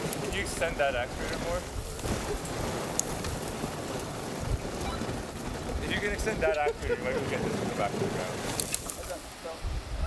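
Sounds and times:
tyres spinning in loose dirt: 0:00.0 - 0:09.3
wind rumbling on microphone: 0:00.0 - 0:10.0.

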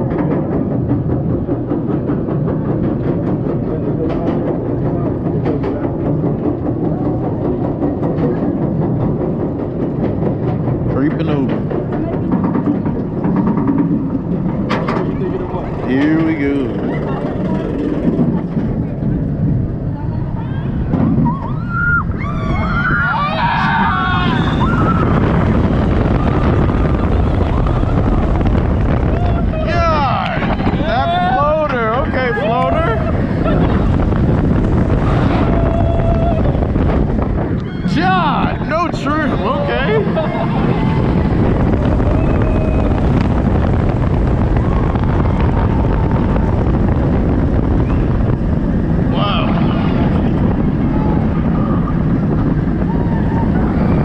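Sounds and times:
roller coaster chain lift rumble: 0:00.0 - 0:54.0
wind rushing over microphone: 0:00.0 - 0:54.0.

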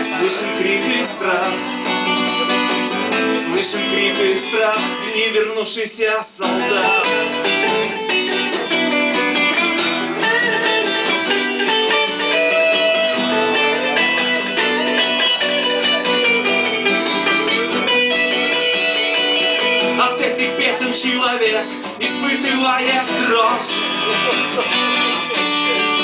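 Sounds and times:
electric guitar lead melody: 0:00.0 - 0:05.4, 0:06.4 - 0:26.0
acoustic guitar strumming chords: 0:00.0 - 0:26.0.

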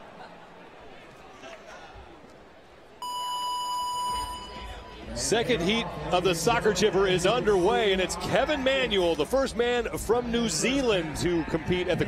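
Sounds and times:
electronic start buzzer beep: 0:03.0 - 0:05.0.

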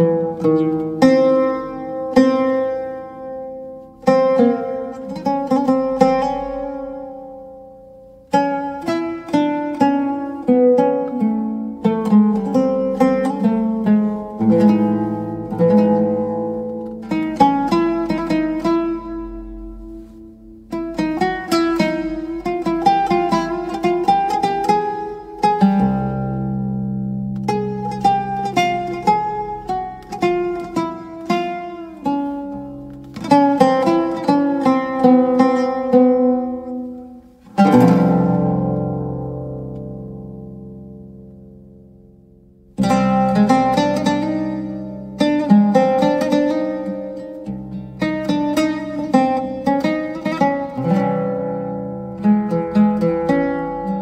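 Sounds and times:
oud playing fast melody: 0:00.0 - 0:54.0
strummed chord: 0:00.0 - 0:54.0.

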